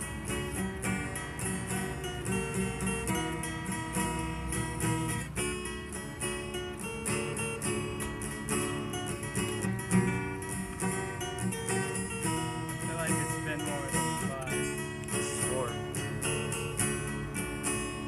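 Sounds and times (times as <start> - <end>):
acoustic guitars strumming: 0.0 - 18.0.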